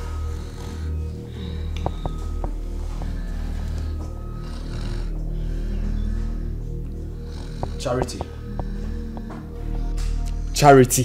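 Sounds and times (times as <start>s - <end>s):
woman snoring: 0.0s - 10.4s
low music underscore: 0.0s - 11.0s.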